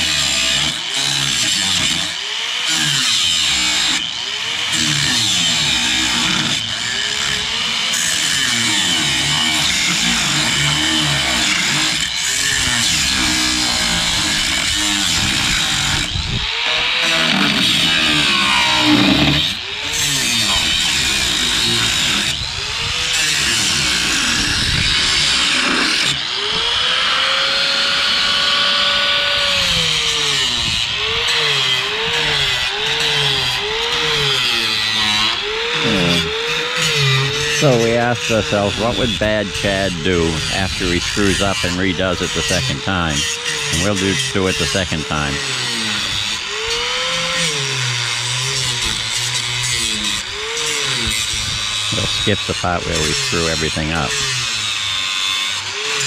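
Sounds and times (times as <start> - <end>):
power tool running under load: 0.0 - 56.0.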